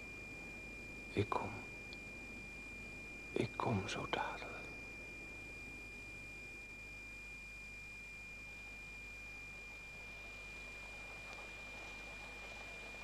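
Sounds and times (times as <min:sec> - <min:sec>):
faint hiss and low hum: 0:00.0 - 0:13.0
thin high-pitched whine: 0:00.0 - 0:13.0.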